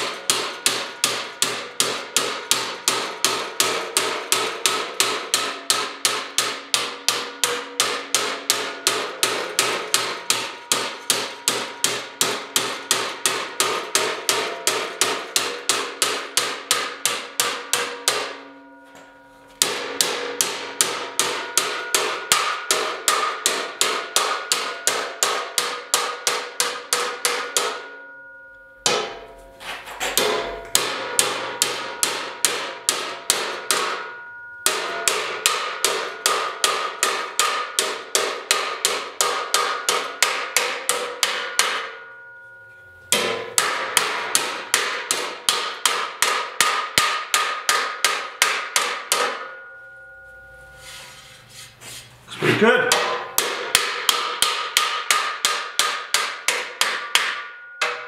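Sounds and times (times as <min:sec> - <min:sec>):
metal ringing: 0:00.0 - 0:58.0.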